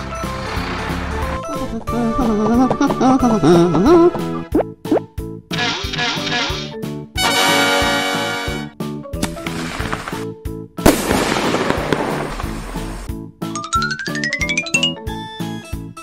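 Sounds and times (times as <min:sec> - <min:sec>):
upbeat cartoon music: 0:00.0 - 0:09.9, 0:13.4 - 0:16.0
loud pop with fizzing hiss: 0:10.9 - 0:12.9
hissing burst: 0:11.1 - 0:13.1.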